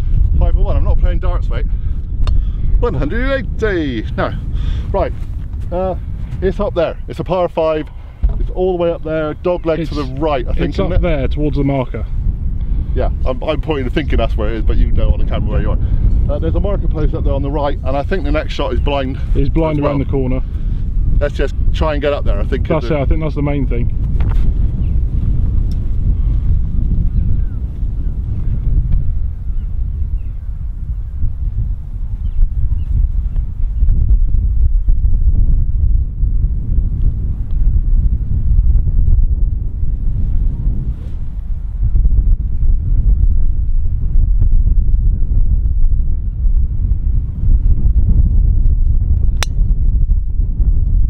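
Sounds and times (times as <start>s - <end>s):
wind buffeting microphone: 0.0s - 51.0s
golf club striking ball: 49.4s - 49.7s.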